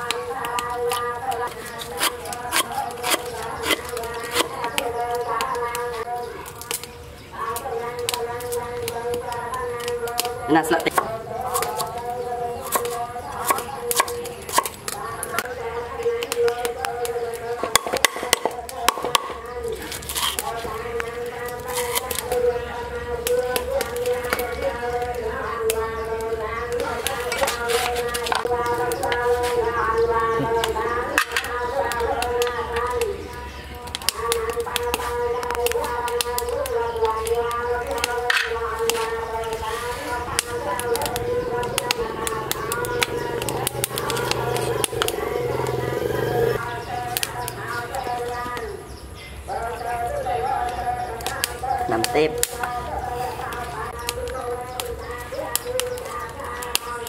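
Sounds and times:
wood fire crackling and popping: 0.0s - 29.7s, 30.5s - 48.8s, 51.1s - 57.0s.

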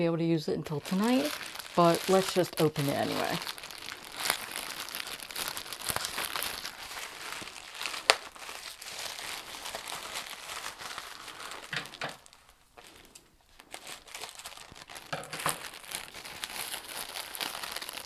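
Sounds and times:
plastic bag crinkling and rustling: 0.6s - 18.0s.

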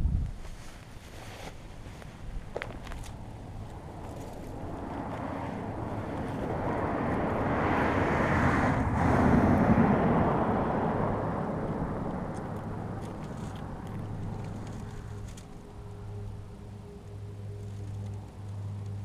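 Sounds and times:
vehicle driving past: 3.3s - 19.0s.

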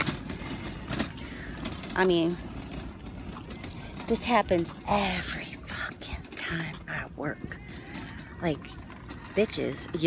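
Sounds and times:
low vehicle engine rumble: 0.0s - 10.0s.

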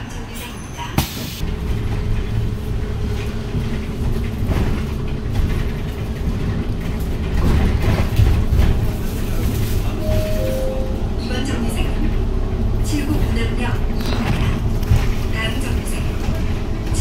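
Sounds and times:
bus cabin low rumble: 0.0s - 17.0s.

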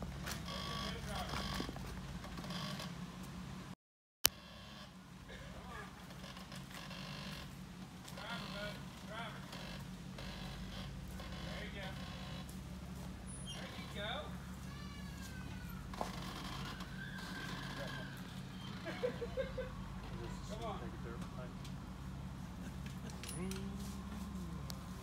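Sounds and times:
car engine running at low revs: 0.0s - 25.0s
people talking: 0.7s - 1.6s, 8.2s - 9.5s, 11.4s - 12.0s, 18.8s - 21.6s, 23.0s - 24.8s.

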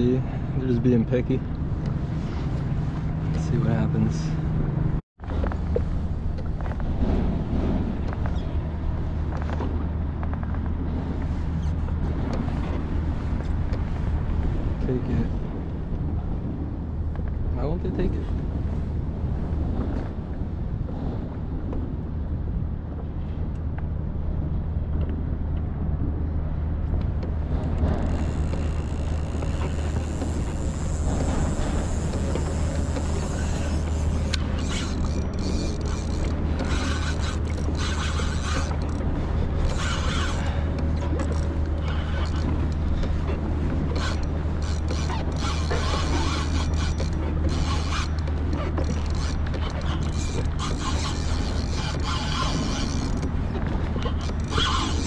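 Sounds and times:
mechanical creaking and clicking: 27.6s - 55.0s.

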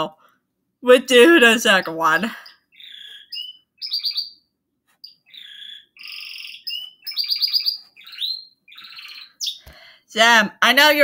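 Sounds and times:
bird chirping and trilling: 2.1s - 9.8s.

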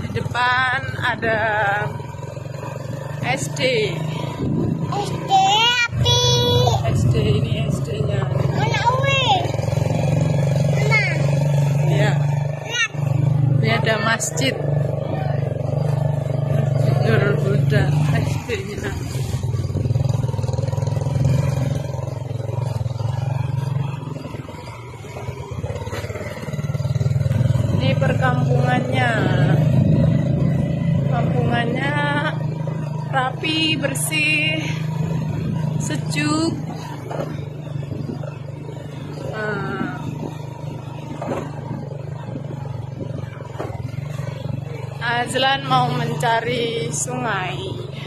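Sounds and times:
motorcycle engine running: 0.0s - 48.0s.

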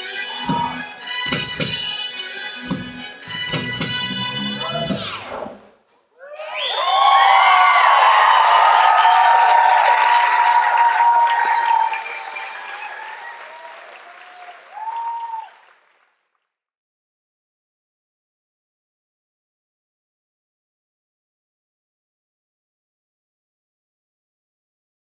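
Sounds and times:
audience applause and cheering: 0.0s - 1.8s, 6.2s - 16.2s
music: 0.0s - 5.8s
high whoops: 0.1s - 0.9s, 6.2s - 15.6s.

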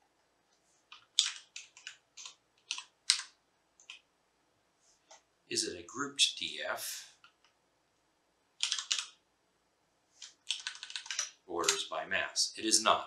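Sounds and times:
computer keyboard key clicks: 0.9s - 4.0s, 8.6s - 9.2s, 10.2s - 11.8s
person speaking: 5.5s - 7.2s, 11.5s - 13.0s.

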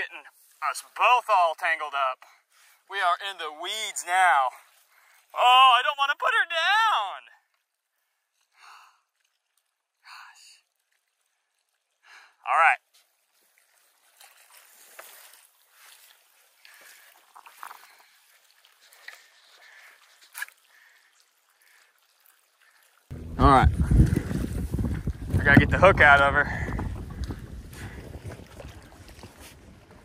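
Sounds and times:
wind buffeting microphone: 23.1s - 30.0s.

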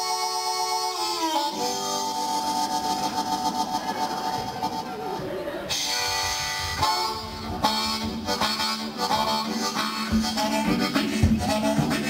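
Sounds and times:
blues harmonica: 0.0s - 12.0s.

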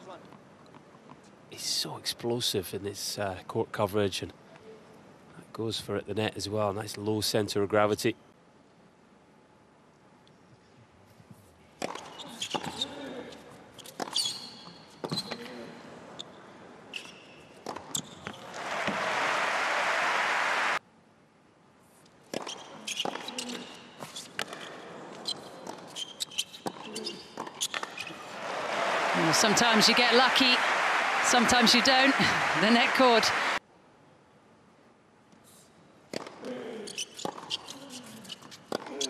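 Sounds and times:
crowd applauding: 18.4s - 20.8s, 28.2s - 33.6s.

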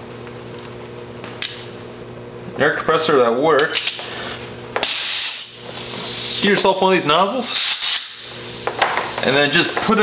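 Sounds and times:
compressed air blast hissing: 4.8s - 6.8s, 7.4s - 9.8s.

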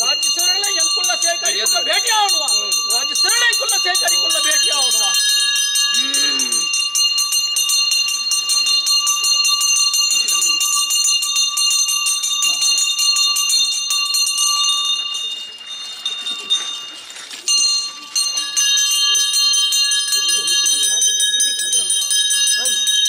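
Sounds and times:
hand bell ringing rapidly: 0.0s - 23.0s.

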